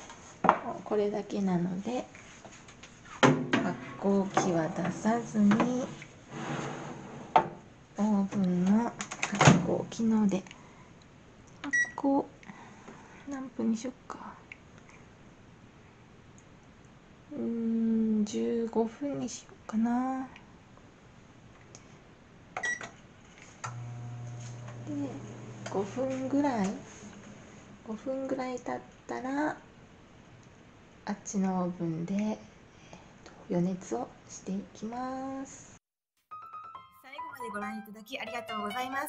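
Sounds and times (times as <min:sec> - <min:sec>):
baking tray scraping into oven: 0:03.6 - 0:07.4, 0:23.7 - 0:28.0.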